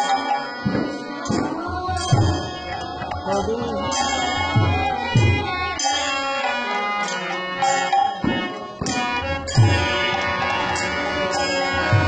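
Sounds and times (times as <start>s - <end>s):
harmonium: 0.0s - 12.0s.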